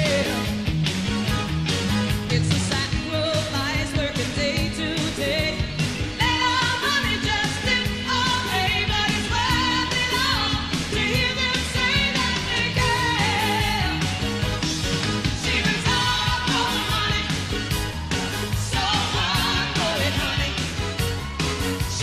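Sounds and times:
woman singing: 0:00.0 - 0:00.5, 0:02.3 - 0:14.2, 0:15.2 - 0:17.8, 0:18.6 - 0:20.9
band playing pop song: 0:00.0 - 0:22.0.

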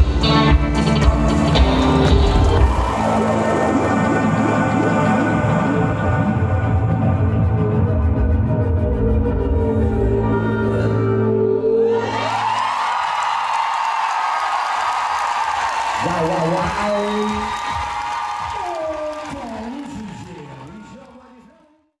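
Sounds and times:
audience cheering and applauding: 0:00.8 - 0:05.5, 0:12.0 - 0:21.8
man's voice: 0:16.0 - 0:17.8, 0:18.4 - 0:21.9.

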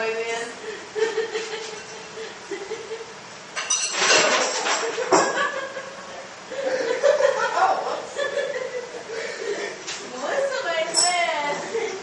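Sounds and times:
hard objects clattering: 0:03.6 - 0:05.4.

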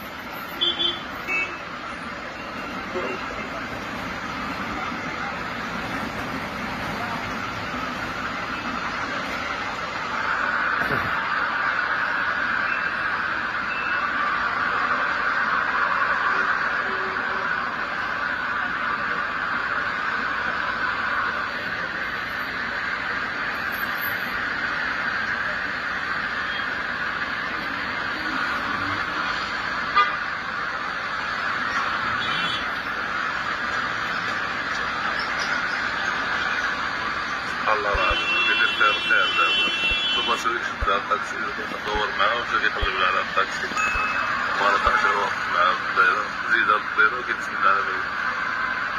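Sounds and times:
city street traffic: 0:00.0 - 0:48.9
car horns: 0:00.5 - 0:01.7, 0:29.8 - 0:30.4, 0:32.1 - 0:32.8, 0:37.7 - 0:40.7.

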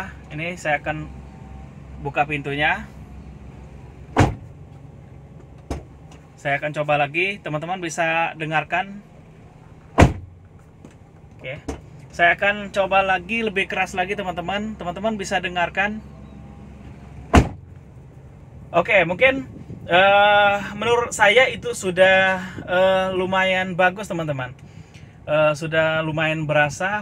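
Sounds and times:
car door slamming: 0:04.1 - 0:04.8, 0:05.4 - 0:06.2, 0:09.8 - 0:12.0, 0:17.3 - 0:17.8.

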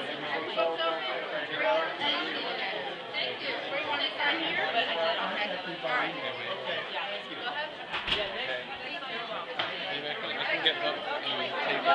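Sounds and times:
indistinct chatter of people: 0:00.0 - 0:11.9.

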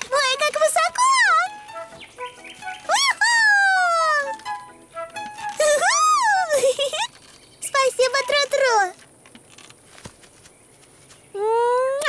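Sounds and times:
soft background music: 0:00.0 - 0:06.7.

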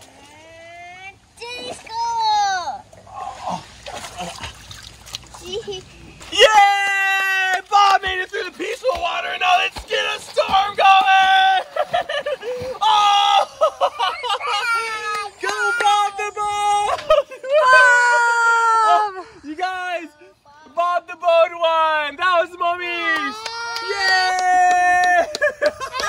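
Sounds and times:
water splashing from wading: 0:01.2 - 0:15.6
children crying out: 0:12.6 - 0:19.3, 0:23.3 - 0:25.3.

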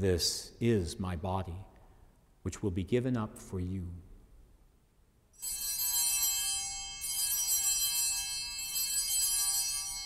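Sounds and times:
altar bells ringing: 0:05.4 - 0:10.0.

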